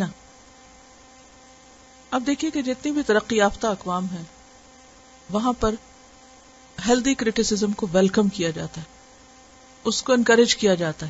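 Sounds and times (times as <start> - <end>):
faint electrical hum: 0.0 - 11.0
person speaking: 2.1 - 4.4, 5.3 - 5.8, 6.8 - 9.0, 9.8 - 11.0.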